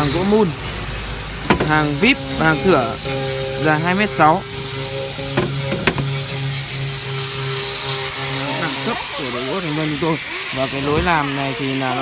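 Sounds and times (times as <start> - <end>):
machine hum with pulsing note: 0.0 - 12.0.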